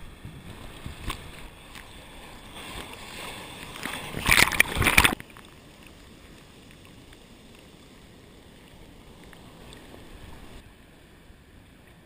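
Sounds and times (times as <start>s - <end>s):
sea water sloshing: 0.1s - 7.0s
water splash hitting camera: 3.7s - 5.3s.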